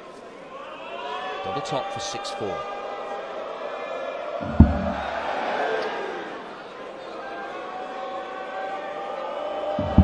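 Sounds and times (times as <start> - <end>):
arena crowd murmuring: 0.0 - 10.0.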